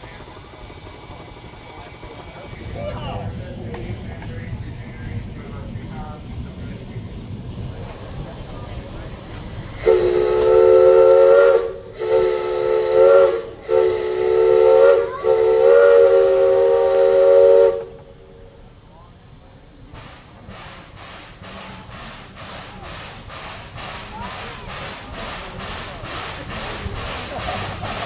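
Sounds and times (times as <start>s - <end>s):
locomotive exhaust chuffing: 0.0s - 18.6s, 19.9s - 28.0s
steam locomotive whistle: 9.8s - 18.2s.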